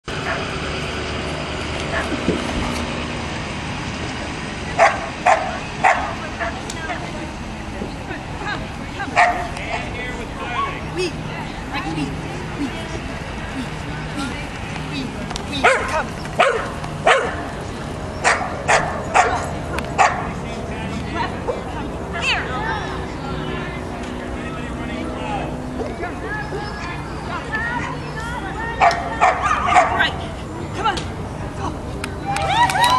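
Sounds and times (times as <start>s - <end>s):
outdoor chatter: 0.0s - 32.9s
dog barking: 4.8s - 6.6s, 9.2s - 9.5s, 15.6s - 17.4s, 18.2s - 20.3s, 28.8s - 30.1s.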